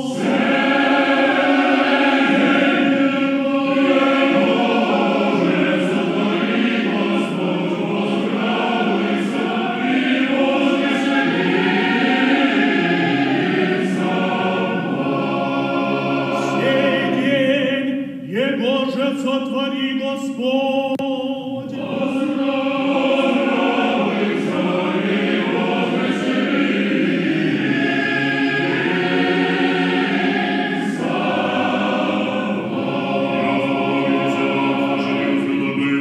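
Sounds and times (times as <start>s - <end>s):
choir singing unaccompanied chant: 0.0s - 36.0s.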